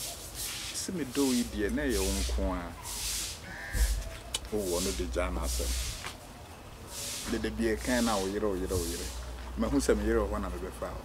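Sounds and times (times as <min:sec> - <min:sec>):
man talking: 0:00.8 - 0:02.8, 0:04.4 - 0:05.9, 0:07.3 - 0:11.0.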